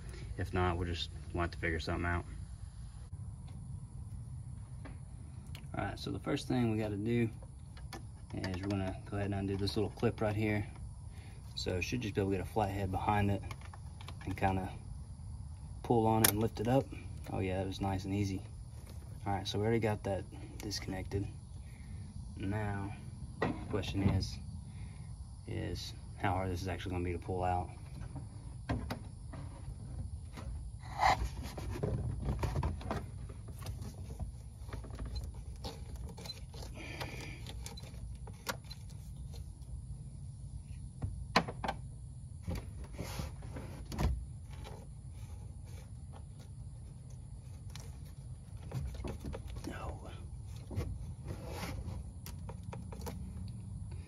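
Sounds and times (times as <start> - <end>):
low steady hum: 0.0 - 54.0.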